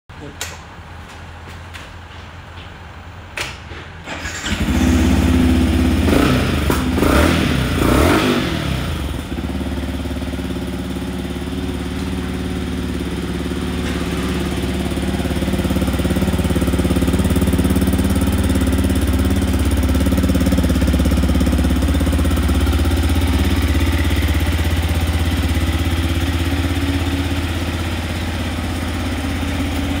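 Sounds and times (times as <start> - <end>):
motorcycle engine revving and idling: 4.2 - 30.0.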